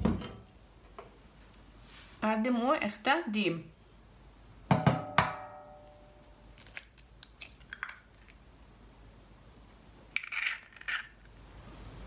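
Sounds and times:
eggshell crackling open: 6.5 - 8.6, 10.1 - 11.4.

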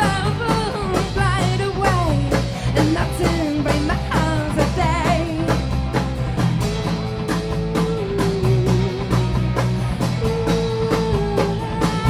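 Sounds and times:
bass line: 0.0 - 12.0
drum kit beat with cymbals: 0.0 - 12.0.

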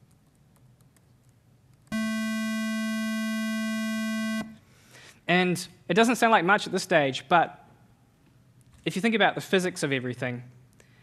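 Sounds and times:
square wave tone: 1.9 - 4.6.

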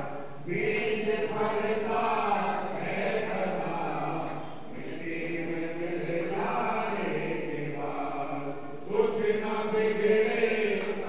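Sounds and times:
men chanting a prayer: 0.0 - 11.0.

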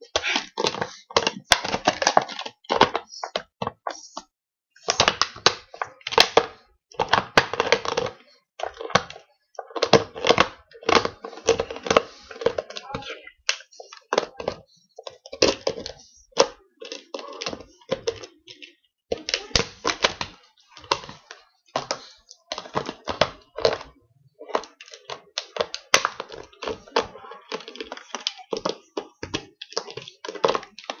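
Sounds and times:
dog chewing plastic bottle: 0.0 - 31.0.

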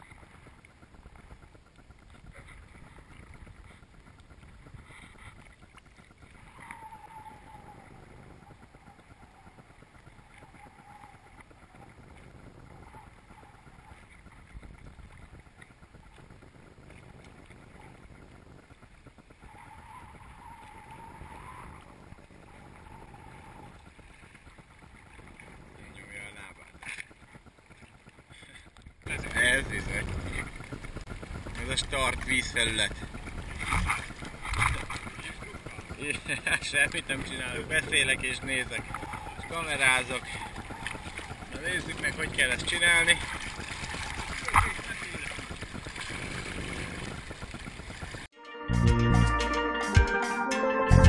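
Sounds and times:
small waves lapping: 0.0 - 48.3
wind on microphone: 29.0 - 36.4.

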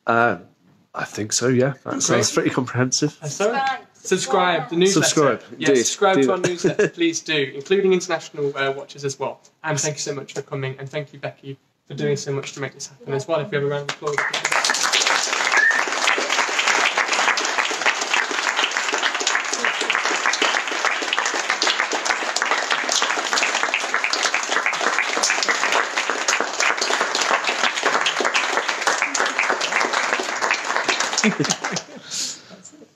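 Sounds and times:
audience applauding: 13.9 - 32.3.

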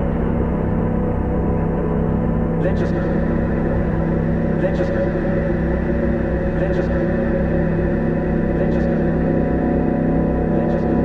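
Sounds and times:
low rumble: 0.0 - 11.0
noisebox with delay and reverb: 0.0 - 11.0
sustained synthesizer tones: 0.0 - 11.0.

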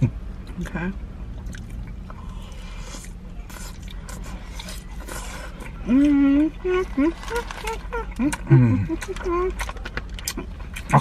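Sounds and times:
steady low hum: 0.0 - 11.0
chewing and wet mouth sounds: 0.3 - 11.0.

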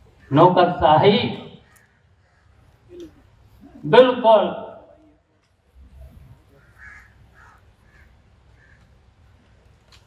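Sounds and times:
crow cawing faintly: 1.6 - 3.3, 6.3 - 9.8.

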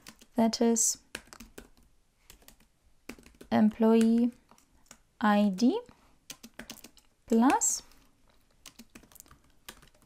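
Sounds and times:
faint keyboard typing: 0.0 - 10.0.

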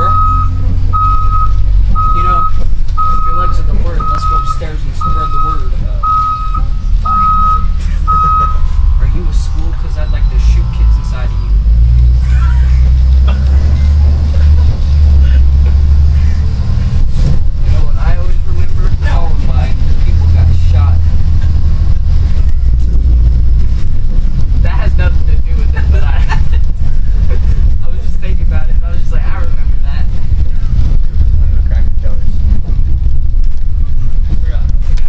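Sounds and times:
bus engine rumble: 0.0 - 35.0
indistinct passenger voices: 0.0 - 35.0.

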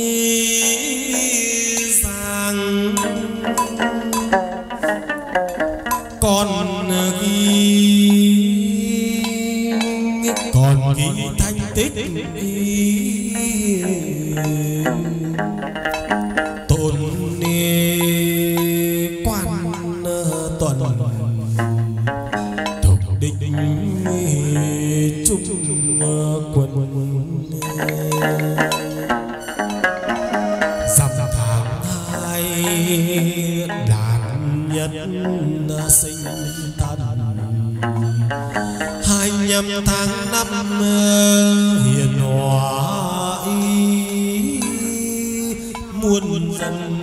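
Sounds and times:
instrumental accompaniment: 0.0 - 47.0
voice chanting held wavering notes: 6.1 - 47.0
voice chanting in long notes: 27.4 - 33.3.

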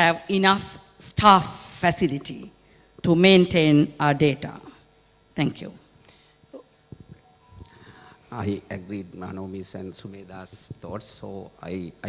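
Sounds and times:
microphone handling clicks: 6.9 - 8.0.

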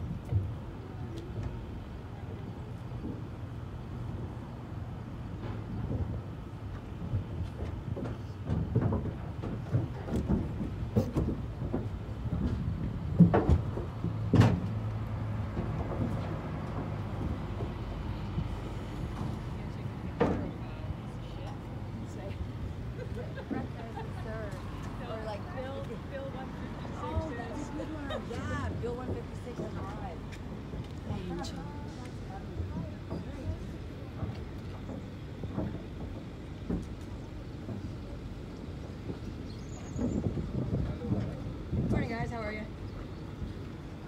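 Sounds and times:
truck idling rumble: 0.0 - 44.0.

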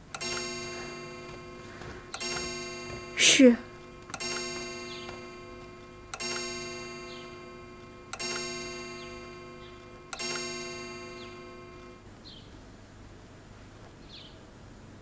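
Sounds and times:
bell-like chime ringing: 0.2 - 12.0.

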